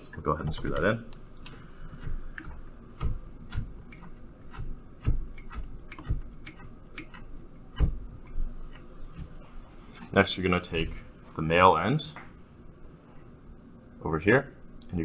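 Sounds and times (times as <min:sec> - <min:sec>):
connector screwing clicks and ticks: 0:00.6 - 0:07.3.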